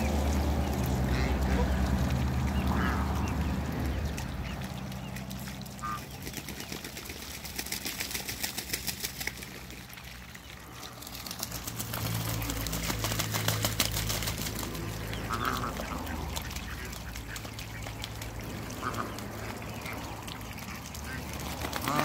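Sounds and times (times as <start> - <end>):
ducks quacking: 0.0 - 6.8, 12.0 - 22.0
bills dabbling in a puddle: 0.0 - 22.0.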